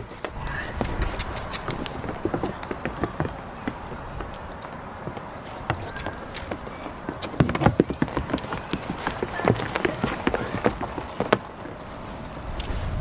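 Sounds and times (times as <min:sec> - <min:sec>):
goat hooves on wooden boards: 0:00.0 - 0:12.7.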